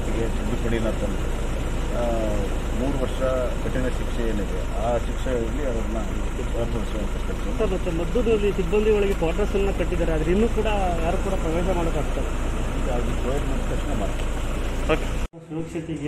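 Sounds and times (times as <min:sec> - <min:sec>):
man speaking: 0:00.0 - 0:01.2, 0:01.9 - 0:16.0
car engine idling: 0:00.0 - 0:16.0.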